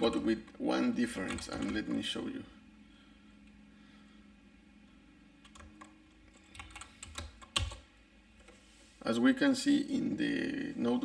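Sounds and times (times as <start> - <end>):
typing on computer keyboard: 1.2 - 1.9, 5.4 - 7.8.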